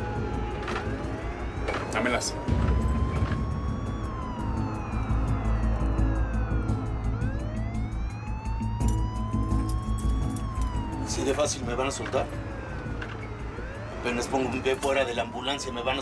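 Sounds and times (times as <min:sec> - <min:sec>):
low rumble of vehicle: 0:00.0 - 0:14.7
ambulance siren wailing: 0:00.0 - 0:16.0
background music: 0:00.0 - 0:16.0.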